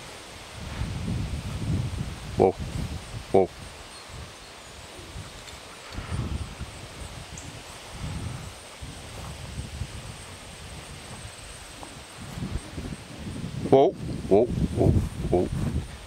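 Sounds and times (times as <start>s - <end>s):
faint hiss: 0.0s - 16.0s.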